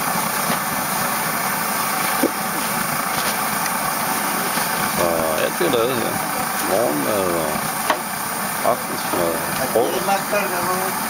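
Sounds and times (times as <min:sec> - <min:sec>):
pressure stoves burning: 0:00.0 - 0:11.0
voices talking: 0:04.7 - 0:11.0.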